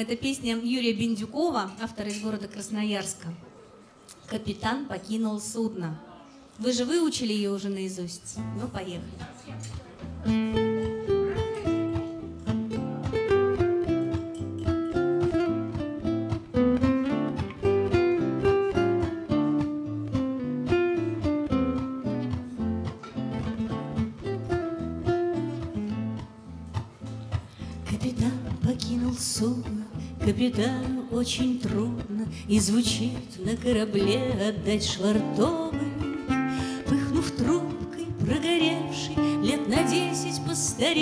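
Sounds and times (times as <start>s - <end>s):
acoustic guitars playing: 8.4s - 41.0s.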